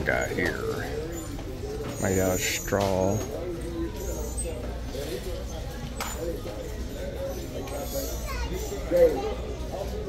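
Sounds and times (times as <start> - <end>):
background chatter of people: 0.0 - 10.0
children's voices: 7.7 - 10.0.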